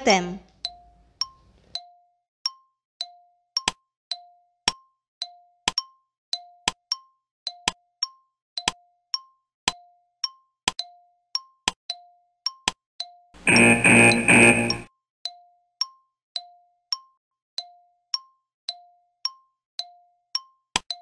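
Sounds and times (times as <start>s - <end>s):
alarm ringing: 13.4s - 14.9s
clock ticking: 13.4s - 14.9s.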